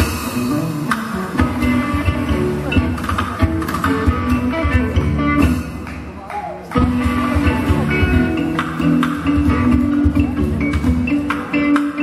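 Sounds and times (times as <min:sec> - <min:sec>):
drum kit: 0:00.0 - 0:12.0
hand percussion: 0:00.0 - 0:12.0
strummed guitars: 0:00.0 - 0:12.0.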